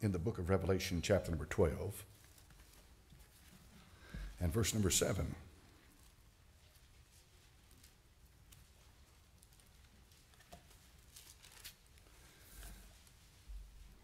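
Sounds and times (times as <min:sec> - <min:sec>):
paper pages rustling: 0:04.6 - 0:14.0.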